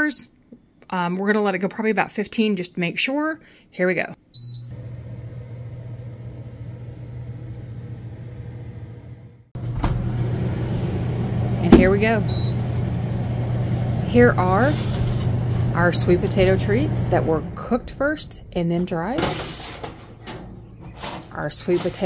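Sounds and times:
dehydrator beeping: 4.4s - 22.0s
fan humming: 4.4s - 22.0s.

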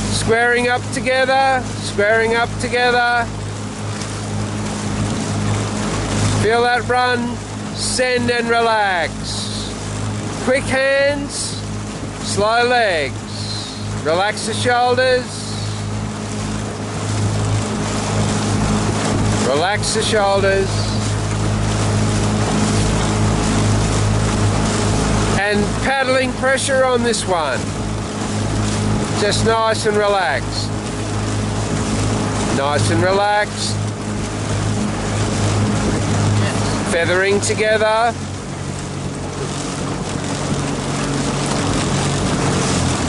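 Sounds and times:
outboard motor humming: 0.0s - 43.0s
rush of water: 0.0s - 43.0s.

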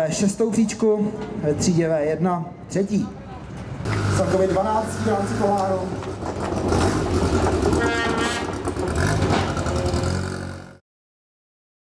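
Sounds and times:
rally car engine revving: 3.9s - 10.8s.

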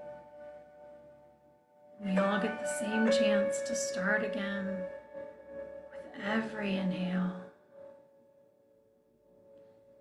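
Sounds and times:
soft meditation music drone: 0.0s - 10.0s.

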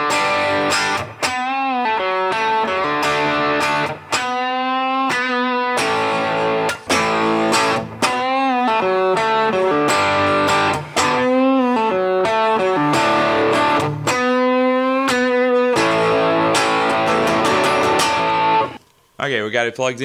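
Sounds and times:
overdriven electric guitar lead: 0.0s - 18.8s.

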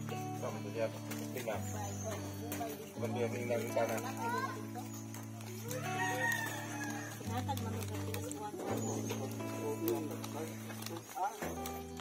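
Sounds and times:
background music low notes: 0.0s - 12.0s
rooster crowing: 5.7s - 7.2s.

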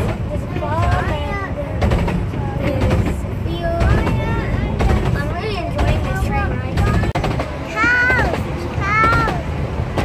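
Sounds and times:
railway carriage rumble: 0.0s - 10.0s
child talking: 0.3s - 1.8s, 2.4s - 9.5s.

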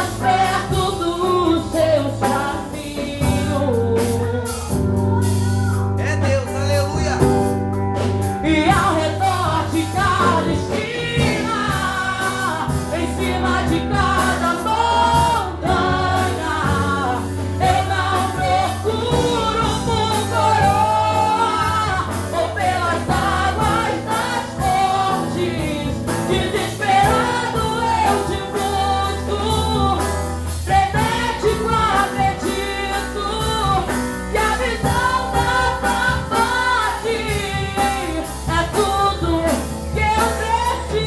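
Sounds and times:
woman singing through microphone: 0.0s - 5.6s, 8.4s - 41.0s.

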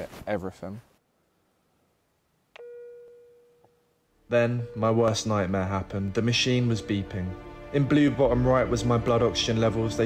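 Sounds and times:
steady electronic beep: 4.3s - 5.5s.

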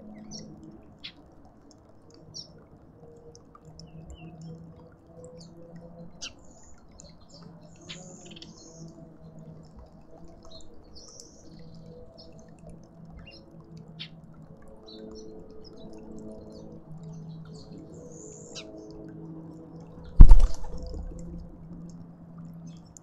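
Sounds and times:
small birds chirping: 6.2s - 9.0s, 10.3s - 12.5s
steady low hum: 20.0s - 23.0s.

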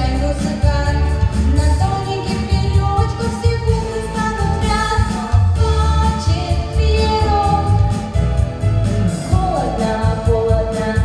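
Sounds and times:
girl singing into a microphone: 0.0s - 7.9s, 9.2s - 11.0s
music with steady bass: 0.0s - 11.0s.

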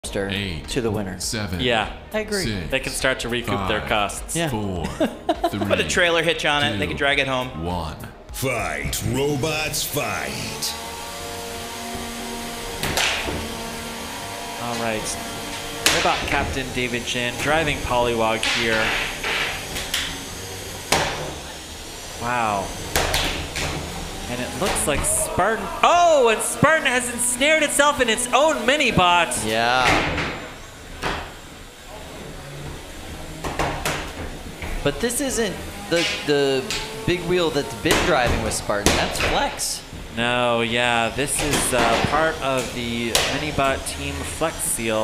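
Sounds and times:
low hum: 8.2s - 33.4s
robot motor whine: 9.2s - 38.9s.

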